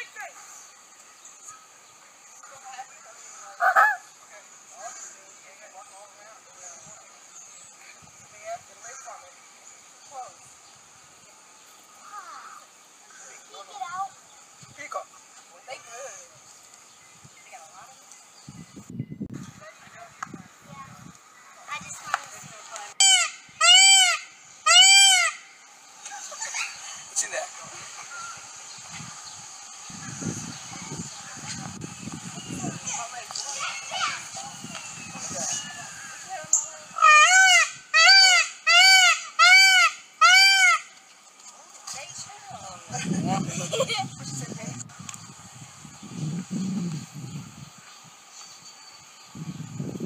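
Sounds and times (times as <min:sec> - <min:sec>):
peacock call: 0:23.0 - 0:25.6, 0:33.6 - 0:41.0.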